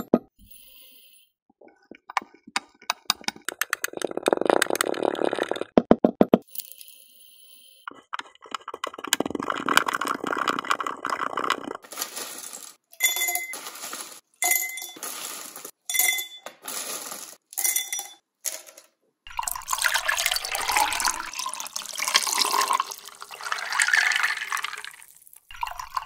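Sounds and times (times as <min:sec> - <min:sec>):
ice crackling: 0:09.2 - 0:15.8
sprinkles crunching under pestle: 0:10.3 - 0:12.8
liquid pouring over ice: 0:19.3 - 0:26.0.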